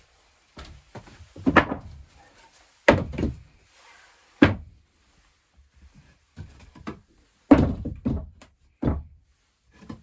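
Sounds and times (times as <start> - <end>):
wooden board knocks: 6.4 - 9.2.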